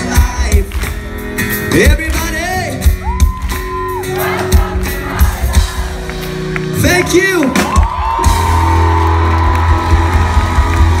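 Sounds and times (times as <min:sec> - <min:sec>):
crowd cheering and whooping: 0:02.9 - 0:06.1, 0:06.8 - 0:11.0.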